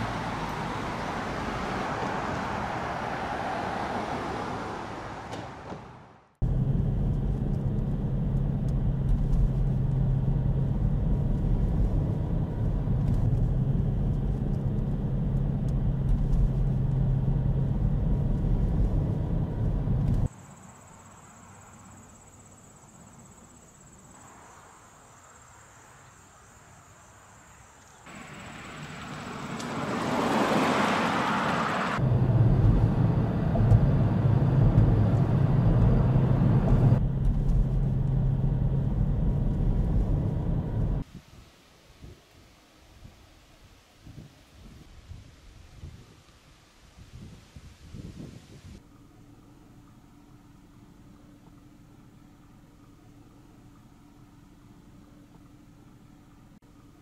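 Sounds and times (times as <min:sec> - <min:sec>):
car engine and road rumble: 0:00.0 - 0:41.1, 0:44.2 - 0:57.0.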